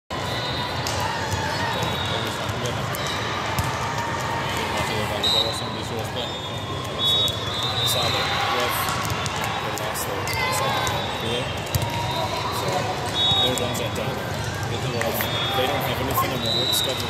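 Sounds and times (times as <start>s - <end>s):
volleyballs slapping and bouncing: 0.7s - 5.1s, 8.7s - 16.0s.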